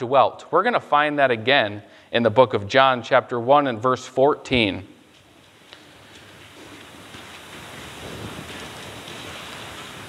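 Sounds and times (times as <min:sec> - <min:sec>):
thin pages rustling: 0:05.1 - 0:10.0.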